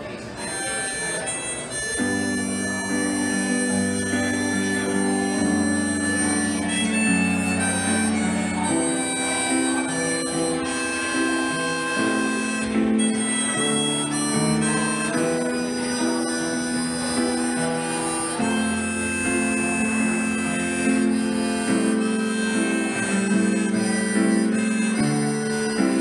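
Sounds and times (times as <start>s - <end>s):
electric keyboard chords: 0.0s - 26.0s
harmonica melody: 0.0s - 26.0s.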